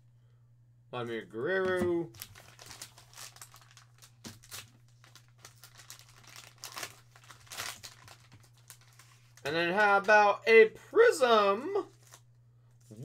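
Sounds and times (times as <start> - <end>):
foil pouch crinkling: 2.1 - 9.5, 11.8 - 12.3.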